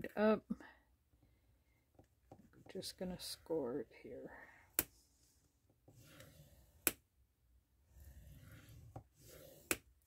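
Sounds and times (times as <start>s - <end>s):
stylus scraping card: 5.9s - 7.0s, 8.0s - 9.9s.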